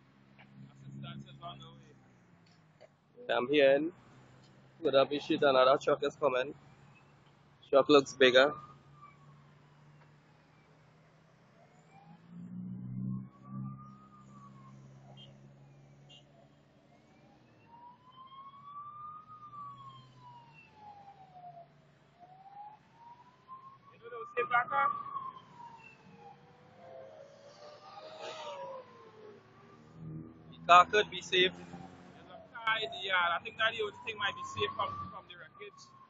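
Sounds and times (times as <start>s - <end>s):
fire truck siren wailing: 0.0s - 36.0s
second siren tone: 6.7s - 21.7s, 22.4s - 30.9s, 33.6s - 36.0s.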